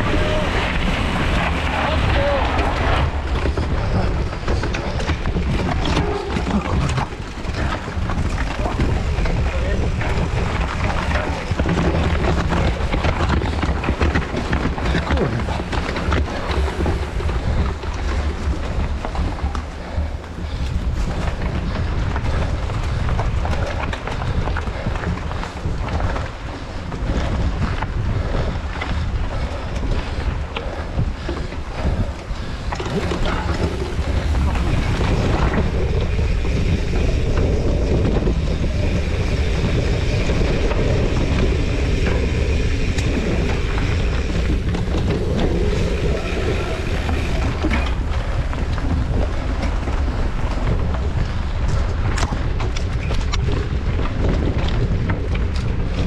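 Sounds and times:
bike knocks and rattles: 0.0 - 56.0
wind buffeting microphone: 0.0 - 56.0.

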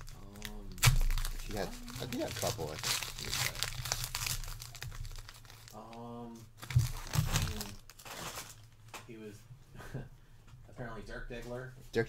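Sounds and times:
foil wrapper crinkling and tearing: 0.0 - 8.9
person humming: 1.4 - 2.4.

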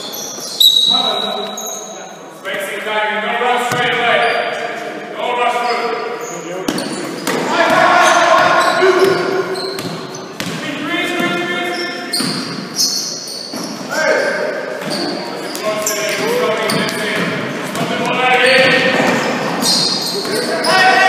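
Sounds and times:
players shouting: 7.2 - 9.8, 15.7 - 21.0
basketball bouncing on wooden floor: 8.4 - 10.6.

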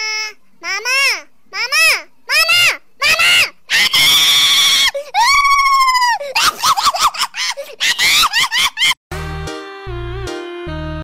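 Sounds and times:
high-pitched voice squealing: 0.0 - 8.9.

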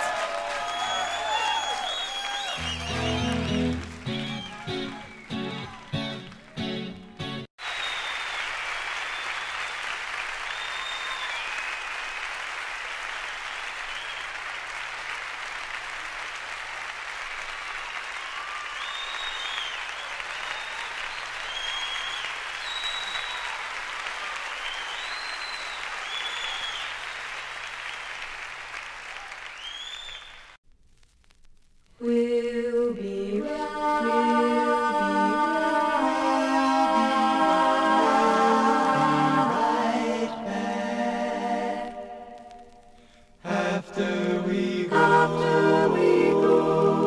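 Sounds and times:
crowd applause: 0.0 - 30.6
high whistle-like chirps: 0.8 - 5.6, 18.4 - 23.6, 24.6 - 27.1.

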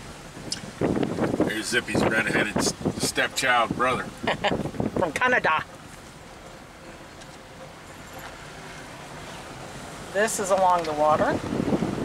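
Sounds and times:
car engine and tyre noise: 0.0 - 12.0.

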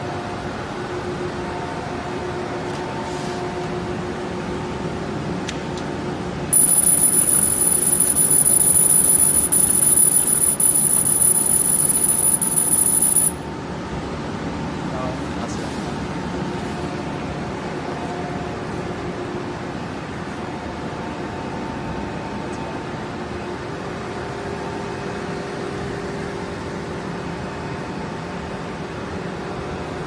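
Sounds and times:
laser cutter high-pitched whine: 6.5 - 13.4
machine hum: 6.5 - 13.5.

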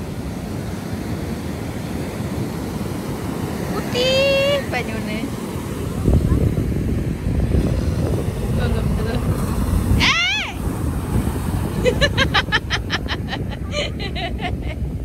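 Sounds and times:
wind buffeting microphone: 0.0 - 15.0
girl shrieking: 10.0 - 10.6
high laughing: 11.8 - 15.0.

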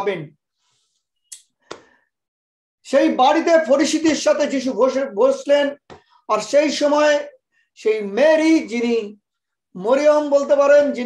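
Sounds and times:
man speaking: 0.0 - 0.3, 2.9 - 9.2, 9.8 - 11.0.

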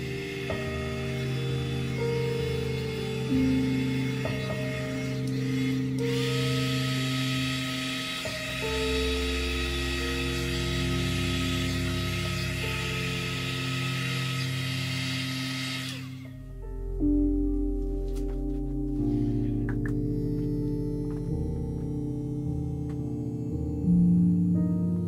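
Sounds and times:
heat gun blowing air: 0.0 - 16.2
soft ambient music: 0.0 - 25.0.

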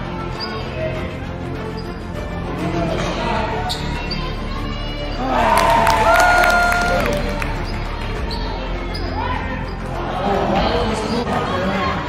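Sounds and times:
murmur of spectators: 0.0 - 12.0
sneaker squeaks: 3.6 - 4.4, 7.5 - 9.9.

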